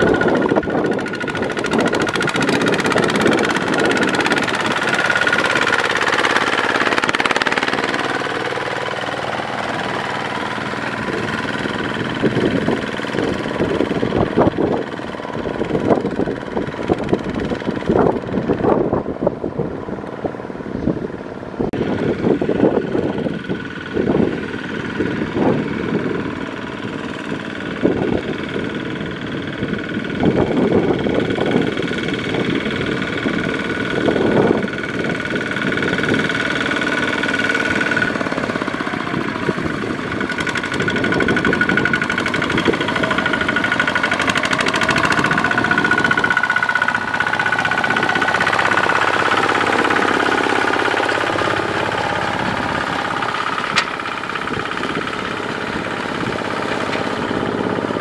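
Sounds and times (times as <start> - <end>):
diesel engine running under load: 0.0 - 58.0.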